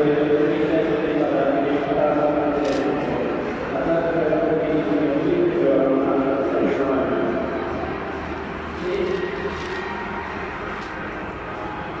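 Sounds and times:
indoor hall background noise: 0.0s - 12.0s.

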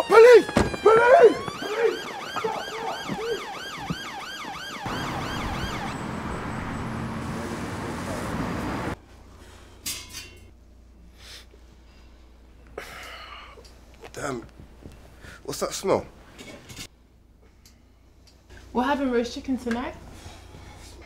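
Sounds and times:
police siren yelping: 0.0s - 7.4s.

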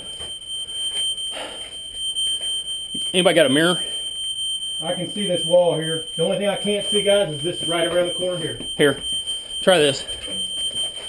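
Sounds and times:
high-pitched electronic alarm tone: 0.0s - 11.0s.

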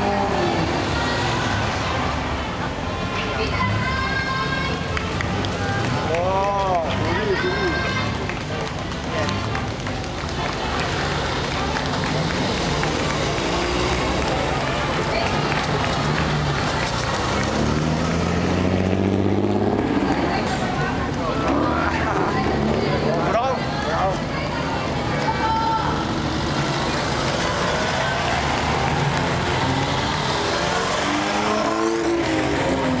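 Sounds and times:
car engines passing: 0.0s - 33.0s
crowd talking: 0.0s - 33.0s
car accelerating away: 11.3s - 23.4s, 26.0s - 33.0s.

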